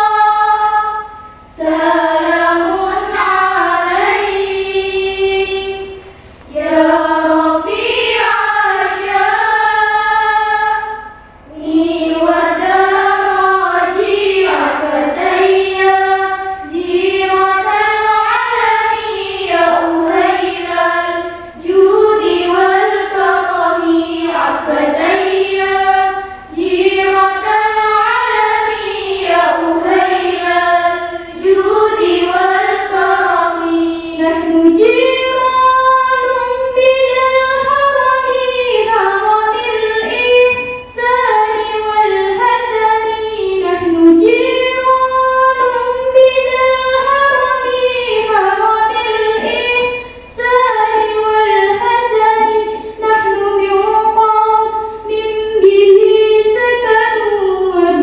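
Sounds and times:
girls singing devotional song: 0.0s - 58.0s.

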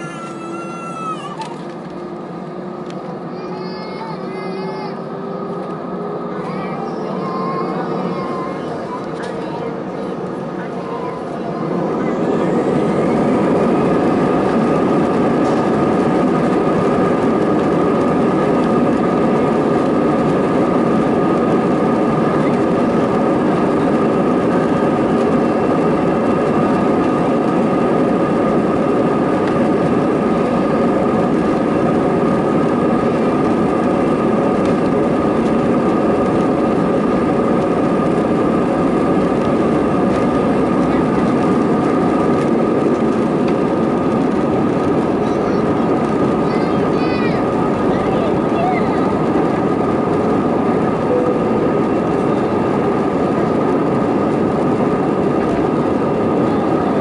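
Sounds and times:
jet engines roaring and whining: 0.0s - 57.0s.

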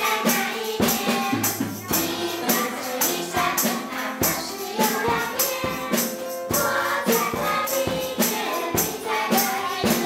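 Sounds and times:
backing music with percussive beat: 0.0s - 10.0s
group singing with children: 0.0s - 10.0s.

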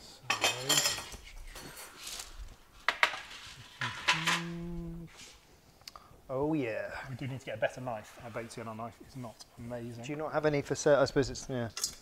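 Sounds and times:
crockery and cutlery clinking: 0.2s - 2.1s, 2.9s - 4.6s
person humming: 3.8s - 5.2s.

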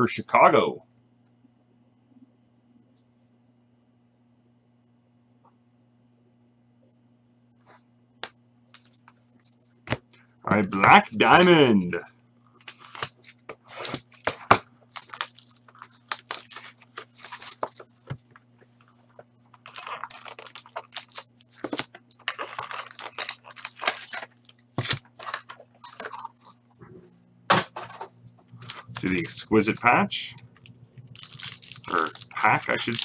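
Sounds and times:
plastic crinkling: 12.5s - 26.7s, 27.8s - 33.0s
shrink-wrap being torn: 12.6s - 18.1s, 19.5s - 26.5s, 28.6s - 29.8s, 30.5s - 33.0s
cardboard rustling: 12.6s - 26.6s.

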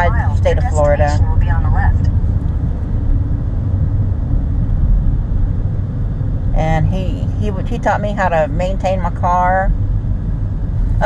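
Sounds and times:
car engine and tyre rumble: 0.0s - 11.0s.

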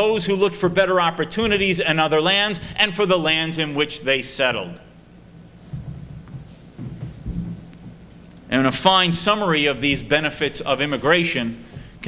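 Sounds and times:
faint room noise: 0.0s - 12.0s
muffled bumps on microphone: 5.6s - 8.2s.

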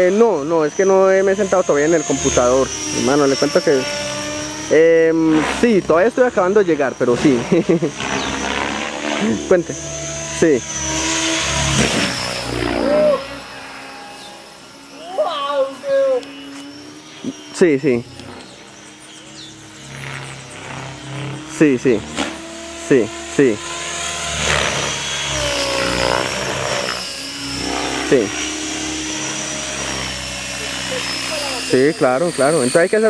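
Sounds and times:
model helicopter rotor whine: 0.0s - 33.0s.

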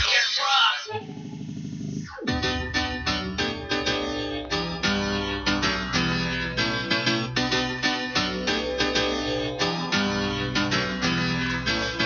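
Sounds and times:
hardcore dance music: 0.0s - 12.0s.

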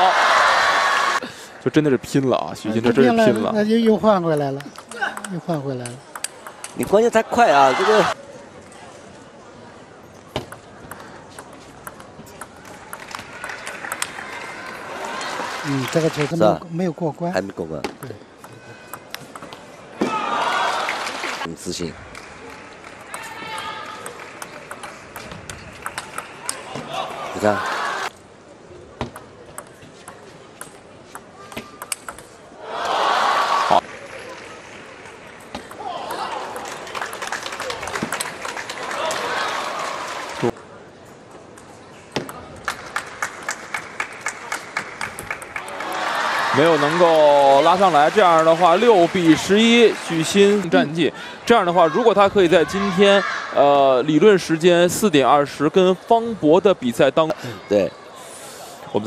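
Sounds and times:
crowd cheering and applauding: 0.0s - 1.2s, 13.1s - 16.3s, 20.2s - 21.5s, 35.9s - 40.5s, 42.7s - 50.8s
table tennis ball ticks: 4.3s - 6.9s, 23.0s - 26.6s, 29.1s - 32.3s.

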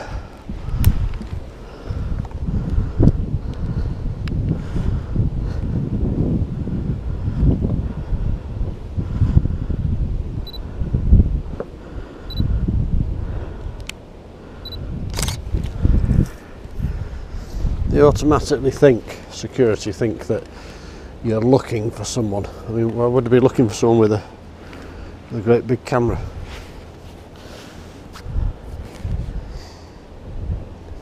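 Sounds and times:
wind buffeting microphone: 0.0s - 31.0s
camera shutter clicks: 15.1s - 15.4s
camera handling clatter: 15.1s - 15.8s.

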